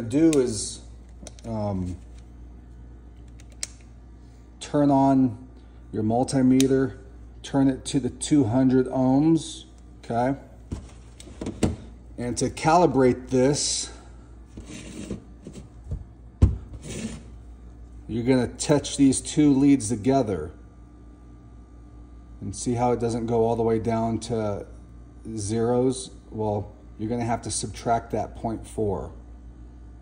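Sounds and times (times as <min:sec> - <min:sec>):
steady low hum: 0:00.0 - 0:30.0
multimeter being handled: 0:03.2 - 0:03.9
faint scraping and rustling: 0:14.5 - 0:15.8, 0:16.8 - 0:17.4.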